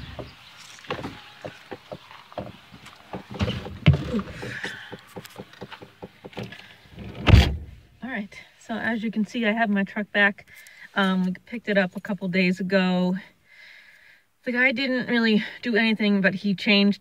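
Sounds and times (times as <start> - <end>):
scattered knocks: 0.0 - 6.6
truck door shutting: 3.2 - 7.8.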